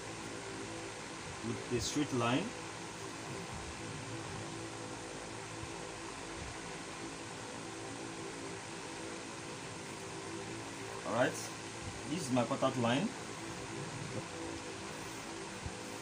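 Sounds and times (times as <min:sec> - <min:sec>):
fan-like hum and hiss: 0:00.0 - 0:16.0.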